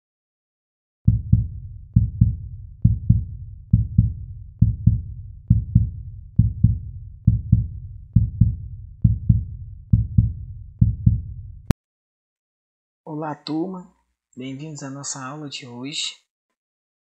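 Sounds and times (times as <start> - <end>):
heartbeat thumps: 1.1 - 11.8.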